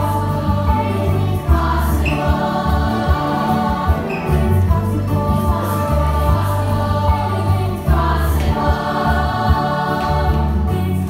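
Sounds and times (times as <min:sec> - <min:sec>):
voices singing together: 0:00.0 - 0:11.0.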